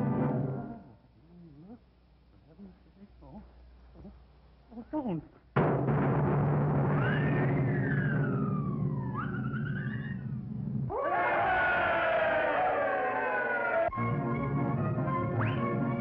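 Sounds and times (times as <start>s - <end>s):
low rumbling drum roll: 5.6s - 11.0s
sudden crash: 5.6s - 11.9s
sliding whistle pitches: 7.0s - 10.4s, 15.2s - 16.0s
orchestral music: 13.9s - 16.0s.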